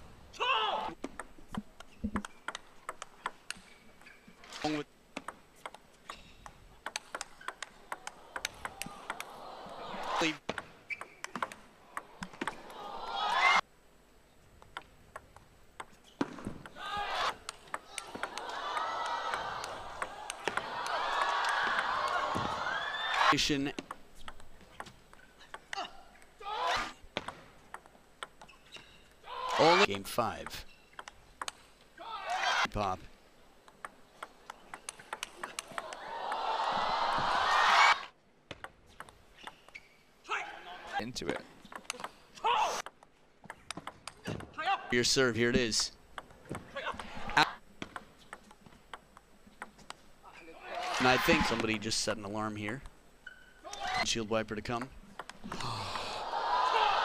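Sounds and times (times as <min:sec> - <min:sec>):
table tennis ball clicking: 0:01.0 - 0:03.7, 0:05.2 - 0:09.3, 0:10.5 - 0:12.6, 0:14.6 - 0:16.0, 0:23.8 - 0:25.8, 0:27.2 - 0:28.6, 0:30.4 - 0:31.6, 0:33.6 - 0:35.9, 0:38.5 - 0:39.8, 0:41.3 - 0:42.2, 0:42.8 - 0:44.5, 0:47.8 - 0:50.0, 0:55.1 - 0:55.5
crowd cheering and shouting: 0:08.0 - 0:10.4, 0:12.0 - 0:13.6, 0:16.8 - 0:23.4, 0:35.7 - 0:38.1, 0:56.0 - 0:57.0.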